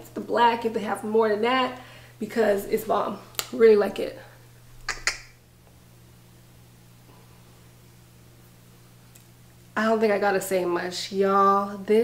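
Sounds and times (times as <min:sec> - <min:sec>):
faint steady low hum: 0:00.0 - 0:12.0
short sharp clicks: 0:04.8 - 0:05.4.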